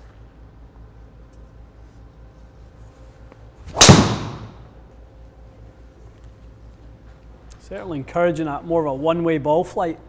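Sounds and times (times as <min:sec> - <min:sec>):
golf club striking ball: 0:03.7 - 0:04.7.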